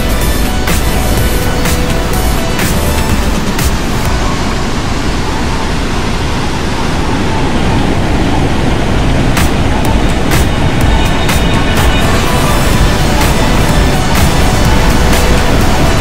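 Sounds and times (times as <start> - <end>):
sharp beats: 0.0 - 4.7, 9.2 - 16.0
background music: 0.0 - 5.4, 9.2 - 16.0
water rushing over a weir: 0.0 - 16.0.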